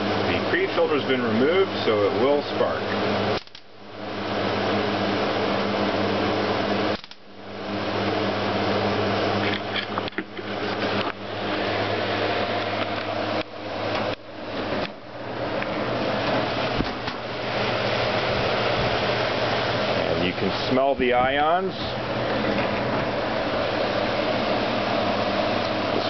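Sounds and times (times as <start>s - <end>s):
air cleaner fan with mains hum: 0.0s - 26.0s
sharp electric snaps: 3.3s - 3.8s, 6.9s - 7.3s.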